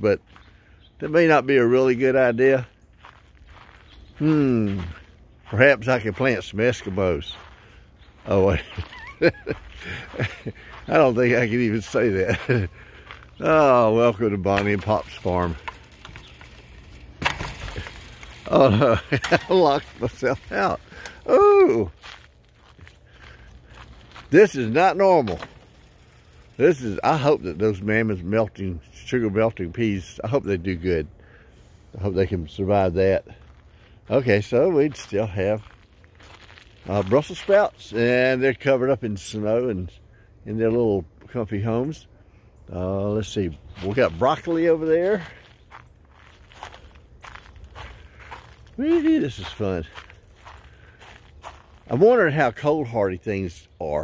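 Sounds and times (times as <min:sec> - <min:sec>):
footsteps crunching on snowy mulch: 0:01.9 - 0:27.9, 0:33.3 - 0:38.0, 0:43.5 - 0:52.9.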